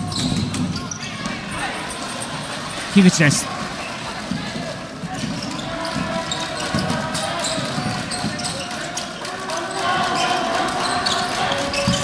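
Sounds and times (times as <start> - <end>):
crowd murmur in large hall: 0.0 - 12.0.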